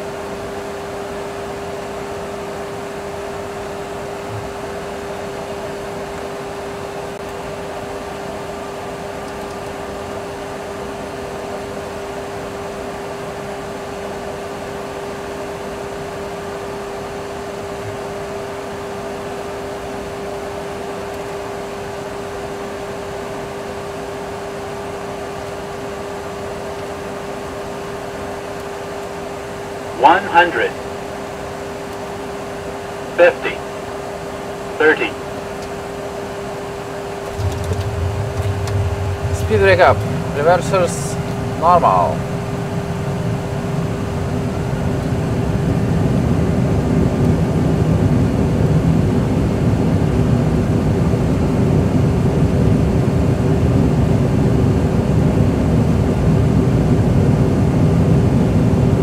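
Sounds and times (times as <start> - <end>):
constant mid-pitched hum: 0.0 - 59.0
rush of air-like noise: 37.2 - 45.9.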